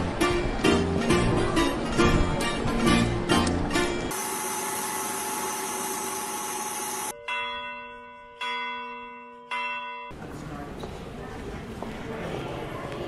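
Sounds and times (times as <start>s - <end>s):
church bell striking: 7.1s - 10.2s.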